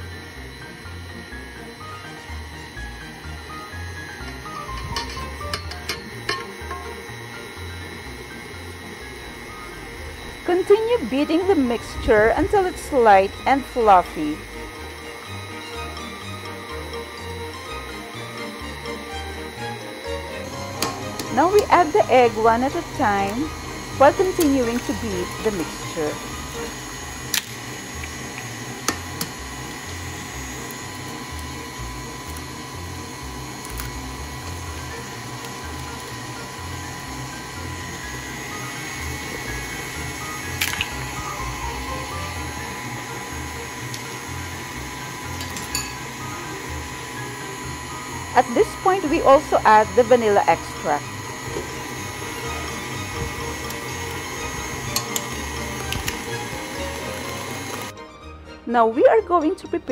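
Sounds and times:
stand mixer motor whirring: 0.0 - 58.0
background music: 0.0 - 59.9.

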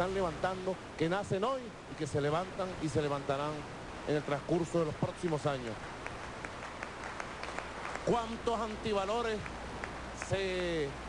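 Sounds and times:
audience applauding: 5.3 - 10.7.

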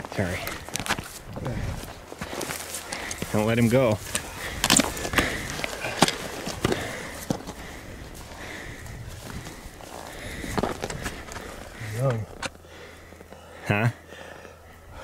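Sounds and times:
noisy outdoor background: 0.0 - 15.0
rustling: 0.3 - 13.3.

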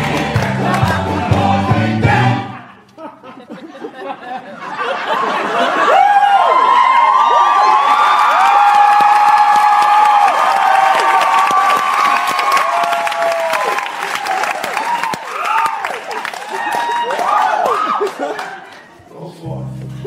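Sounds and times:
audience cheering and screaming: 5.4 - 18.9
applause: 6.4 - 18.9.

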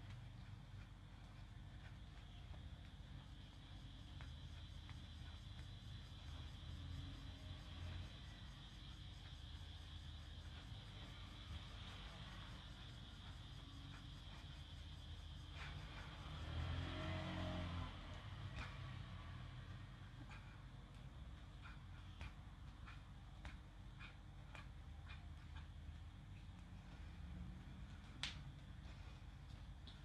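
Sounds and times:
background hum and hiss: 0.0 - 30.0.

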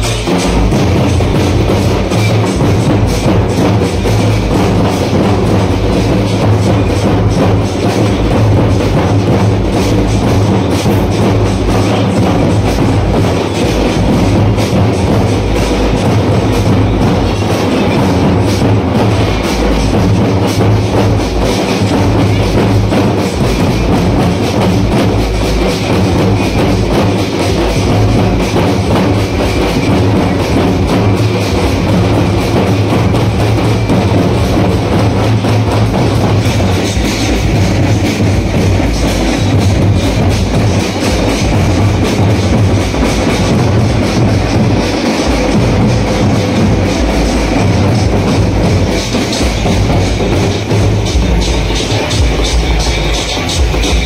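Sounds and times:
procession music with fast drumming: 0.0 - 54.0.

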